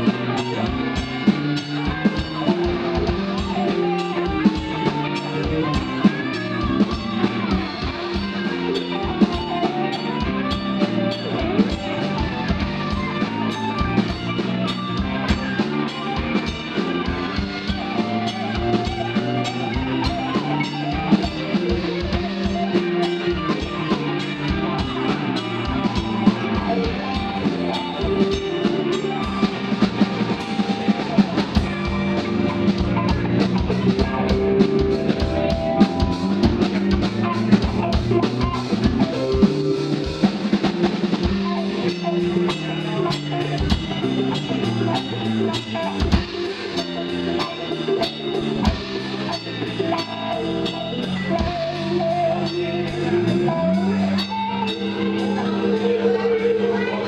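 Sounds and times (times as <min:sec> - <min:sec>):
drum-kit beat: 0:00.0 - 0:57.0
electric guitars: 0:00.0 - 0:57.0.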